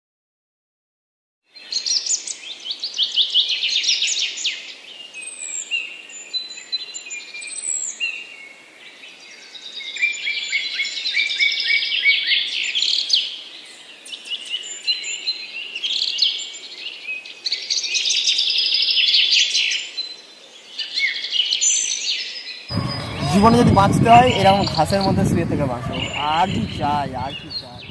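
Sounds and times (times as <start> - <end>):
birds chirping and singing: 22.7 - 27.9.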